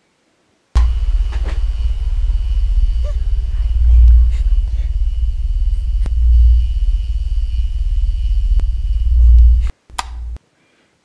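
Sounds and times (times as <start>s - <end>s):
horror soundtrack rumble: 0.8s - 10.4s
thin steady high tone: 0.8s - 10.4s.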